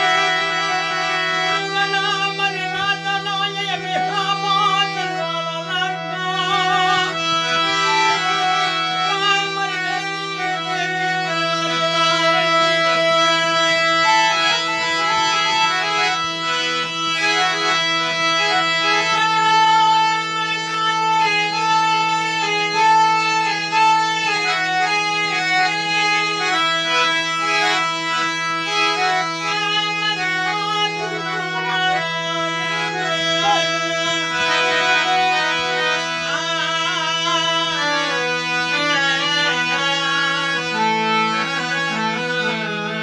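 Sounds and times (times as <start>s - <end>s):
harmonium melody: 0.0s - 43.0s.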